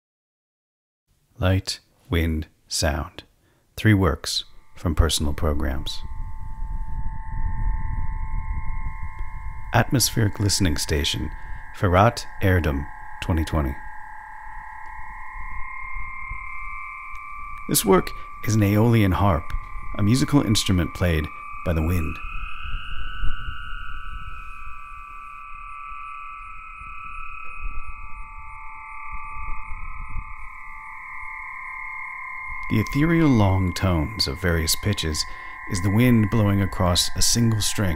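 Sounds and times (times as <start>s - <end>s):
aeolian harp tones: 4.4s - 37.9s
wind rumble on microphone: 4.5s - 37.9s.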